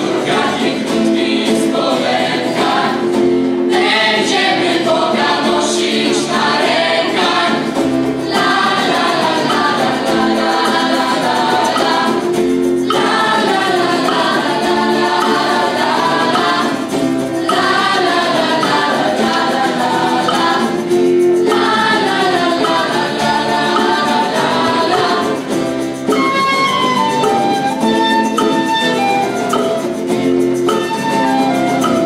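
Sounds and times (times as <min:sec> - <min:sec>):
youth choir singing: 0:00.0 - 0:29.9
acoustic guitar: 0:00.0 - 0:32.0.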